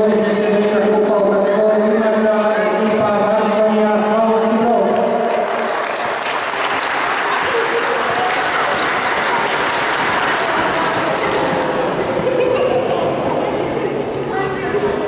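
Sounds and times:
spectators applauding: 5.0s - 12.2s.

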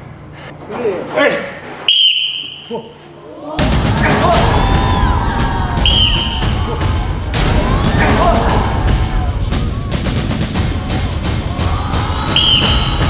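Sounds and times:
referee whistle blast: 1.9s - 2.7s, 5.8s - 6.6s, 12.3s - 13.0s
shouting: 3.2s - 13.0s
loud music: 3.6s - 13.0s.

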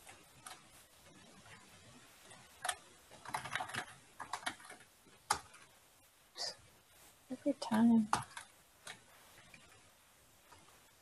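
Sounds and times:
keyboard typing: 0.0s - 5.8s, 8.0s - 9.9s.

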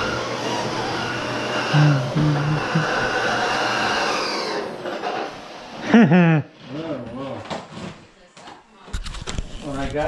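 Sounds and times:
vacuum cleaner motor whining: 0.0s - 5.8s.

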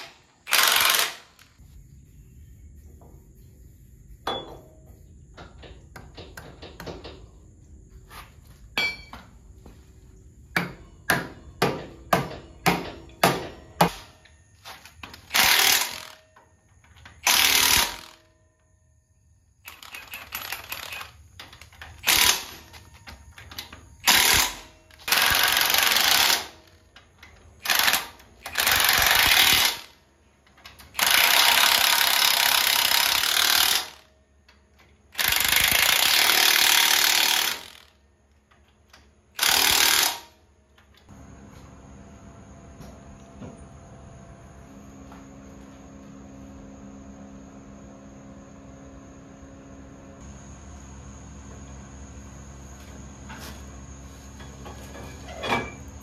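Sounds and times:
impact wrench hammering: 10.5s - 14.1s.

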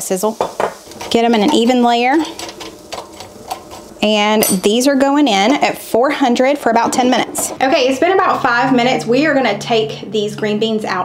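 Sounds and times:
fork scraping air fryer basket: 0.4s - 9.9s.

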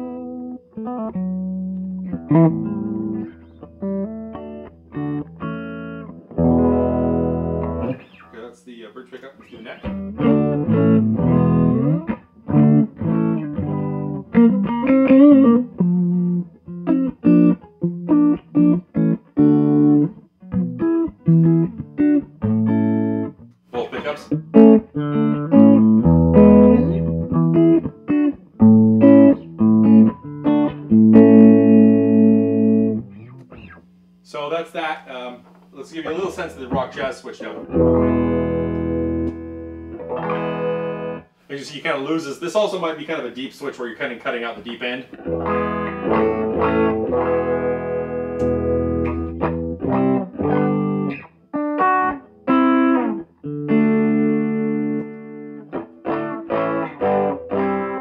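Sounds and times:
clean electric guitar playing: 0.0s - 8.3s, 9.5s - 34.0s, 35.9s - 41.3s, 44.6s - 58.0s.

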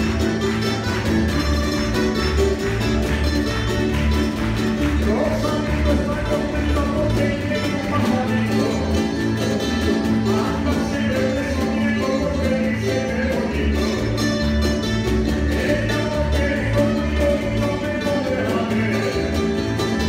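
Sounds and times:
lutes and guitars strumming: 0.0s - 20.0s
pulsing bass line: 0.0s - 20.0s.

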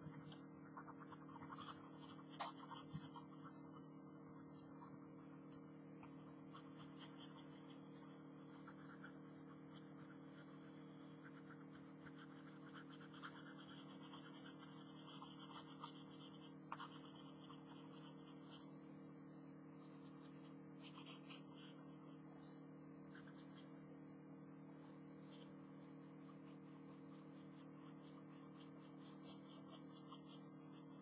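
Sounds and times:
pencil scratching on paper: 0.0s - 18.7s, 19.8s - 22.2s, 23.1s - 23.8s, 25.4s - 31.0s
steady low hum: 0.0s - 31.0s.

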